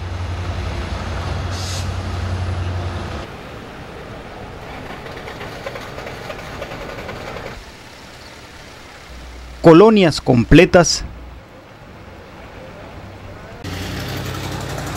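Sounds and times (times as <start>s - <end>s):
heavy vehicle engine rumbling: 0.0s - 9.6s, 11.0s - 14.9s
traffic and water wash: 0.0s - 14.9s.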